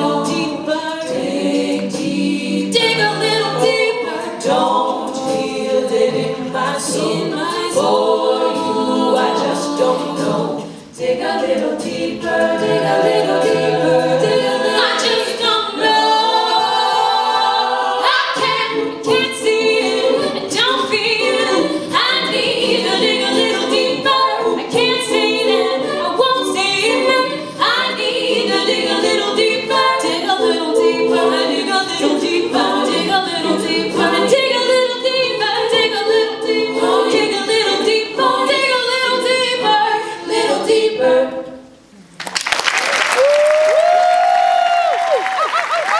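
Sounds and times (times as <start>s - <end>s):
women singing in harmony: 0.0s - 41.9s
beatboxed vocal percussion: 0.1s - 7.7s
audience applauding and cheering: 42.2s - 45.9s.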